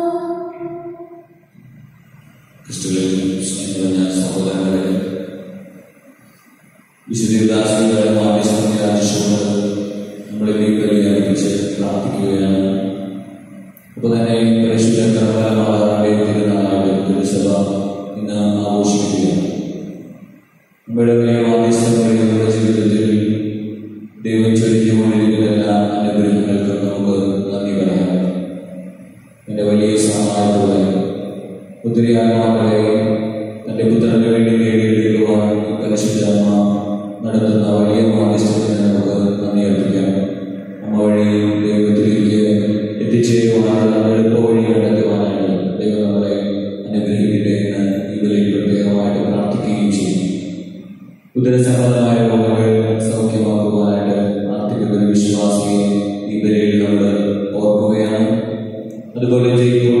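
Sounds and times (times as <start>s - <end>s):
man chanting into a microphone: 0.0s - 5.2s, 7.0s - 19.7s, 20.9s - 50.4s, 51.3s - 60.0s.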